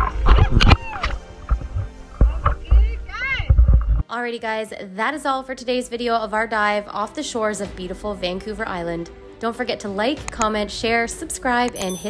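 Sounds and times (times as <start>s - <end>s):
wind rumble on microphone: 0.0s - 4.0s.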